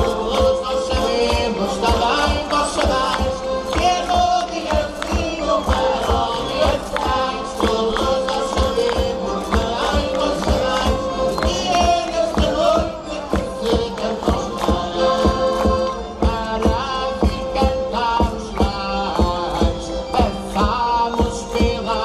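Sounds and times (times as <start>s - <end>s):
group of singers: 0.0s - 22.0s
instrumental accompaniment: 0.0s - 22.0s.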